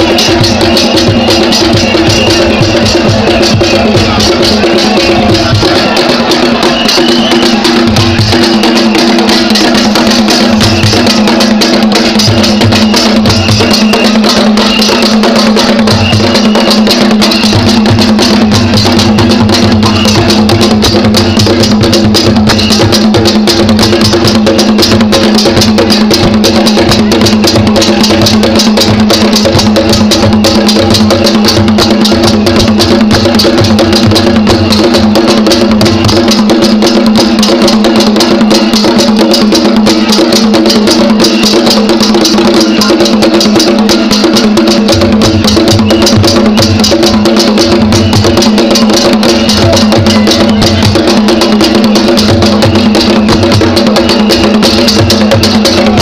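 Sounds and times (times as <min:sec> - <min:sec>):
drums beaten in fast rhythm: 0:00.0 - 0:56.0.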